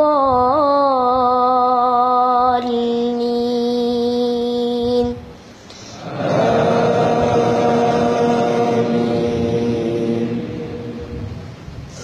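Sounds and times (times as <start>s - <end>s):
boy chanting quran recitation: 0.0s - 5.3s.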